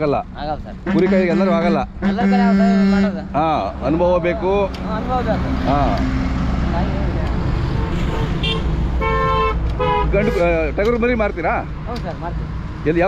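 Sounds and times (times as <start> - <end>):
truck engine rumble: 0.0 - 13.0
vehicle horn: 0.9 - 3.2, 7.8 - 10.5.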